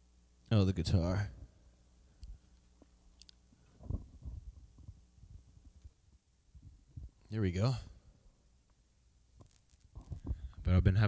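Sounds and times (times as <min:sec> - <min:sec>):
electrical buzz from guitar: 0:09.3 - 0:11.0.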